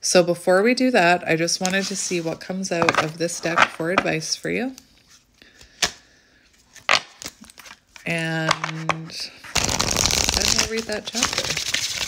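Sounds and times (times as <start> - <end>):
cards snapping: 9.6 - 12.0.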